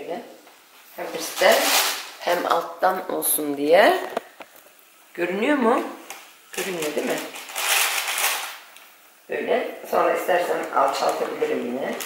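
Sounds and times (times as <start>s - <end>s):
baking paper crinkling: 0.9s - 2.7s, 6.0s - 9.0s, 10.2s - 12.0s.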